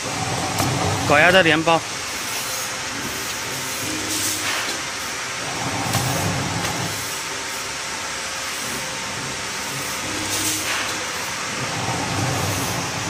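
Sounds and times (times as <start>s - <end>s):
packing machine running: 0.0s - 13.0s.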